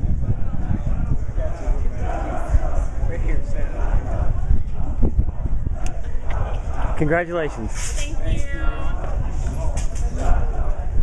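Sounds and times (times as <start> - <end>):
indistinct chatter: 0.0 - 11.0
steady low rumble: 0.0 - 11.0.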